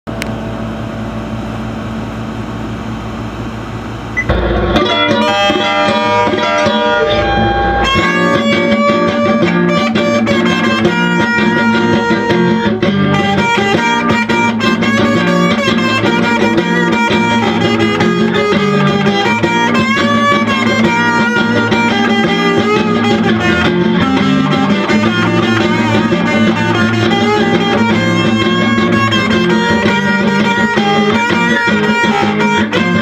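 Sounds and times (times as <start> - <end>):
electric guitar low drone: 3.2 - 33.0
quick melodic guitar notes: 4.2 - 33.0.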